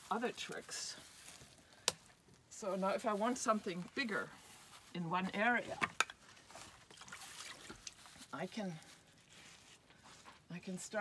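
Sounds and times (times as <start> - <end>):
wet clay scraping and squishing: 0.0 - 11.0.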